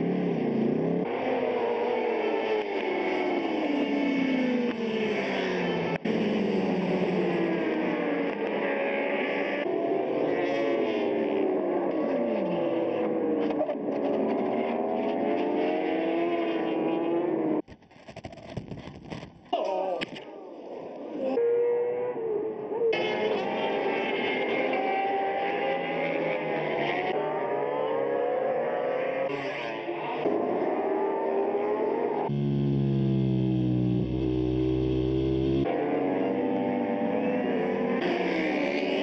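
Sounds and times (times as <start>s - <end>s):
racing motorcycle engines revving: 0.0s - 17.6s, 20.6s - 39.0s
scattered clicks: 17.6s - 19.4s
low rumble: 32.3s - 35.6s.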